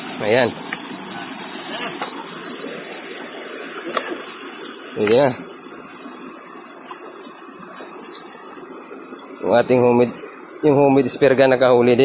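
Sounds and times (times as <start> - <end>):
high-pitched hiss: 0.0 - 12.0
rushing water: 0.0 - 12.0.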